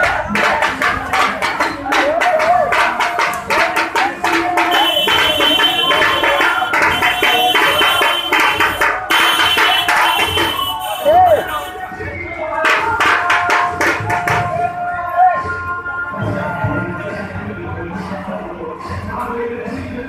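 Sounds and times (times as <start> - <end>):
crowd shouting: 0.0 - 16.6
drums beating fast rhythm: 0.0 - 20.0.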